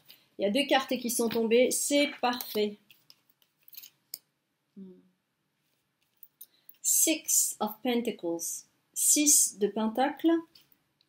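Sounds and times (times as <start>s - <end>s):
woman humming mm: 4.8s - 5.2s.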